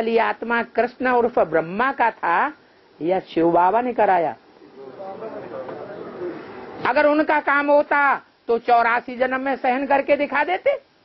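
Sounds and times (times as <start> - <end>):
man talking: 4.6 - 6.5.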